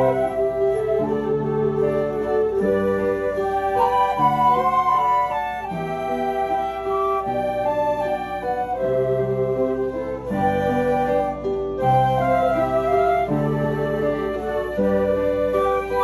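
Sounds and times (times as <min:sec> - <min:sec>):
flute ensemble playing slowly: 0:00.0 - 0:16.0.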